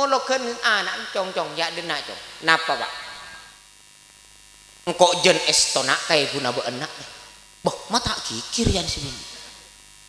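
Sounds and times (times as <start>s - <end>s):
electrical hum and hiss: 0.0s - 10.0s
man speaking: 4.8s - 9.5s.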